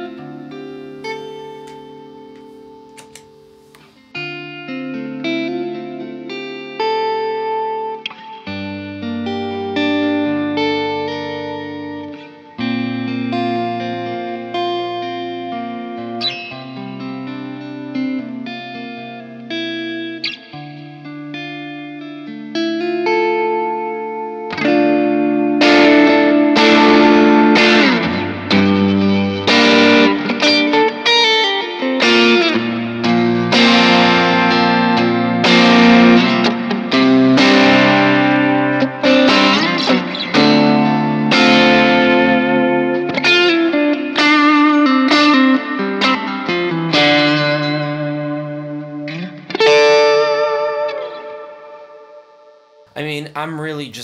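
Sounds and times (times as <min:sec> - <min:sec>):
overdriven electric guitar: 0:00.0 - 0:52.8.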